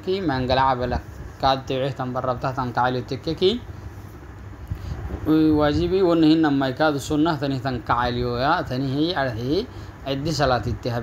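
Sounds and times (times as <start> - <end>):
man lecturing: 0.0 - 3.7, 5.2 - 11.0.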